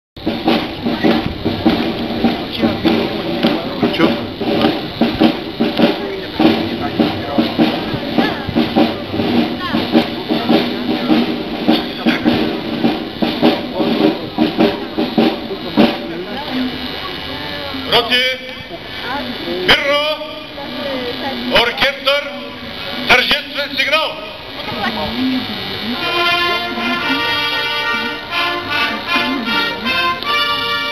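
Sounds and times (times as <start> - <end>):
military brass band playing: 0.2 - 16.1, 25.8 - 30.9
bass and snare drums: 0.2 - 17.0, 25.7 - 30.9.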